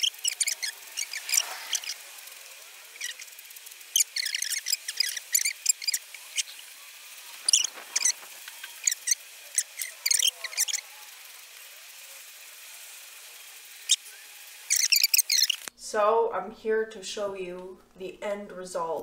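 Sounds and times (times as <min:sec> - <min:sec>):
spray can hissing: 0:00.0 - 0:15.7.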